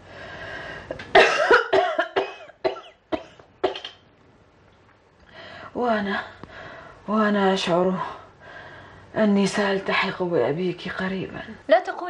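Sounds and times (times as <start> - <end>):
woman coughing: 1.1 - 4.0.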